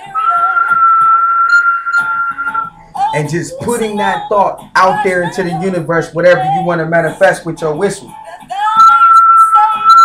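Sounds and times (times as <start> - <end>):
long high whistled note: 0.1 - 2.7.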